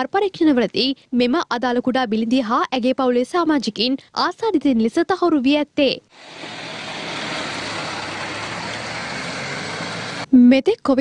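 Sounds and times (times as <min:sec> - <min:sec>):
vehicle engine running: 0:06.1 - 0:10.3
road noise: 0:06.1 - 0:10.4.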